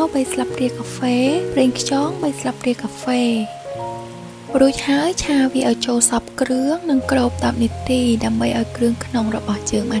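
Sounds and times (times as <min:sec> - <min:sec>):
background music with held notes: 0:00.0 - 0:10.0
food sizzling in a frying pan: 0:00.0 - 0:10.0.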